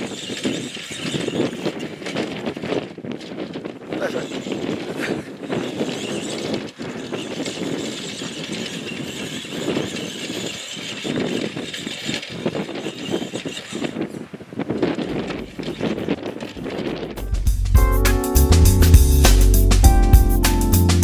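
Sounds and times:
toy truck electric motor surging: 0.0 - 2.6, 4.0 - 16.2.

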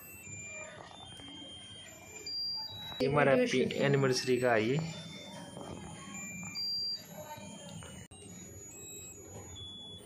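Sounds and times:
tinny electronic tune beeps: 0.0 - 10.0.

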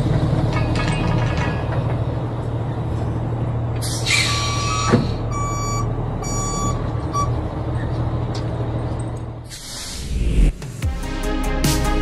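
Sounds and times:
diesel engine running: 0.0 - 9.6
truck reversing alarm beeping: 4.1 - 7.4.

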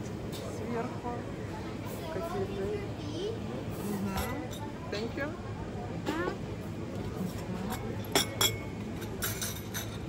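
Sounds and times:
teacup and saucer clinking: 7.8 - 10.0.

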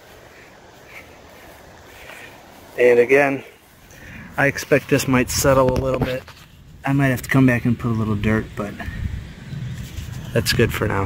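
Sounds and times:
low rumble and hiss: 0.0 - 11.0.

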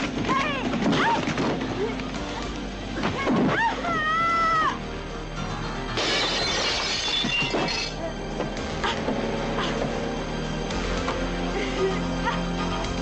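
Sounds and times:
background music: 0.0 - 13.0
shattering crash: 6.0 - 8.0.

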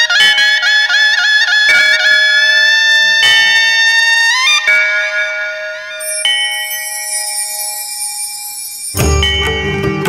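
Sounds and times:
struck bell ringing: 0.0 - 10.0
high shimmering layer: 4.9 - 9.4.

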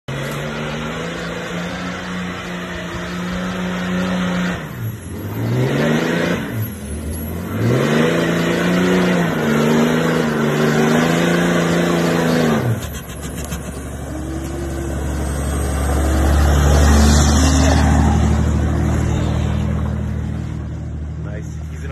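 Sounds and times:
diesel truck engine under load: 0.1 - 21.9.

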